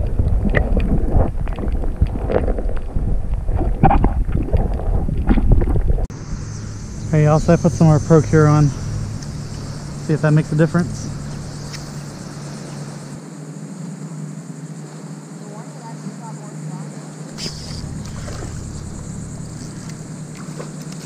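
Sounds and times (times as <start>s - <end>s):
low engine drone: 6.1s - 13.2s, 17.3s - 21.0s.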